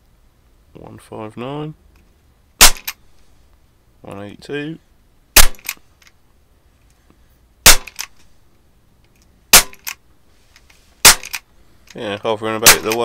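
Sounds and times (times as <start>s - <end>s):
air pistol shots: 2.6s - 3.0s, 5.4s - 5.8s, 7.6s - 8.2s, 9.5s - 10.0s, 11.0s - 11.5s, 12.6s - 13.0s.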